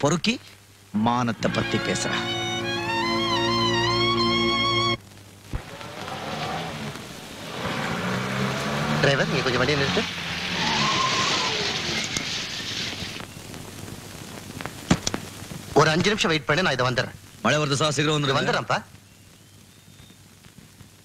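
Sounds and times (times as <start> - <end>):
voices: 0.0 - 2.8, 8.5 - 12.3, 15.8 - 19.0
car tyres skidding to a stop: 5.6 - 13.4.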